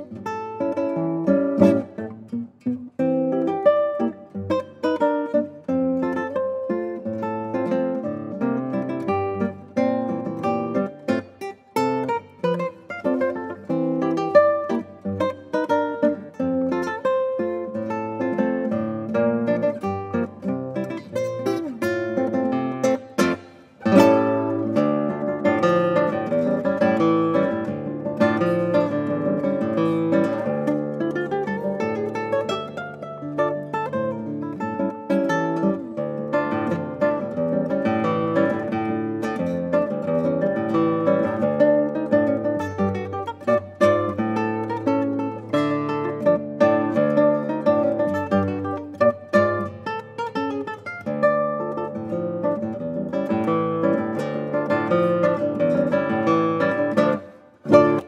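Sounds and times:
fingerstyle classical guitar: 0.0s - 58.0s.

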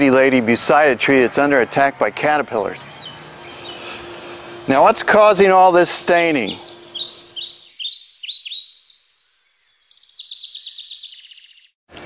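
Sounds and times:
songbird singing: 2.7s - 11.8s.

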